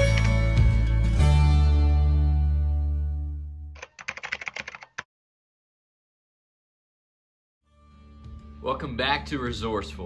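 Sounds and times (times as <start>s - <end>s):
keyboard typing clicks: 3.8s - 5.1s.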